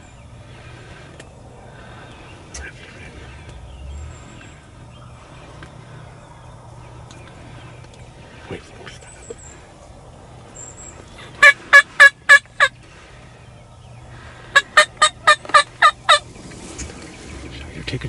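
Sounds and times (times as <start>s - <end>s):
wild turkey yelps: 11.4s - 12.7s, 14.5s - 17.3s.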